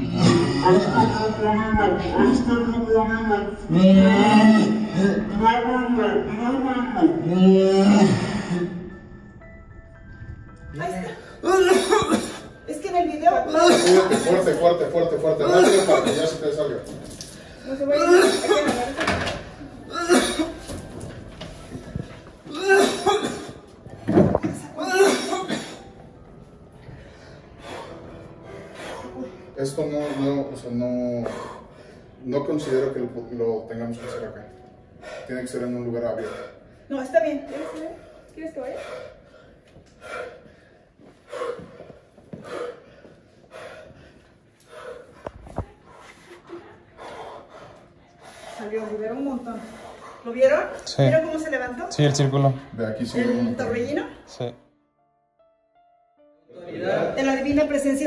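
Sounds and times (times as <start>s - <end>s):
person coughing: 11.4s - 12.5s, 13.5s - 14.5s, 15.4s - 16.5s, 18.0s - 19.2s, 19.9s - 20.8s, 22.5s - 23.6s, 24.7s - 25.8s
person breathing heavily: 26.8s - 30.6s, 37.5s - 50.6s.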